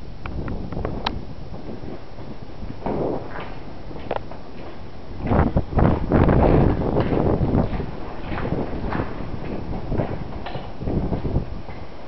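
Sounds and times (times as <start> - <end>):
microphone rumble: 0.0 - 12.0
footsteps on concrete: 1.6 - 12.0.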